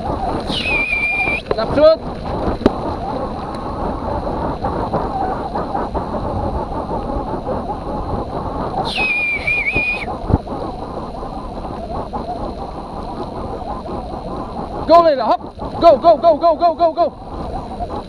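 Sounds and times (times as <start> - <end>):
high wavering squeal: 0.0 - 1.5, 8.8 - 10.1
bike tyres rumbling on grass: 0.0 - 18.0.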